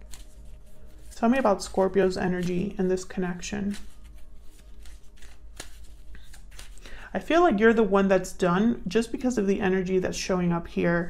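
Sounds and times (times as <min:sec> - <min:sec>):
cards being shuffled: 0:00.0 - 0:07.0
faint background music: 0:00.0 - 0:11.0.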